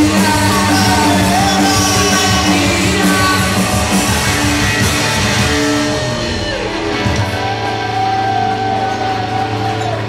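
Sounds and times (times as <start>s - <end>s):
electric guitars droning: 0.0s - 10.0s.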